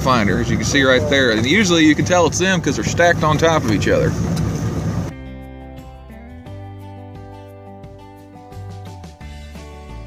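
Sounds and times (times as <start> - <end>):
soft background music: 0.0 - 4.1
boat motor running: 0.0 - 5.1.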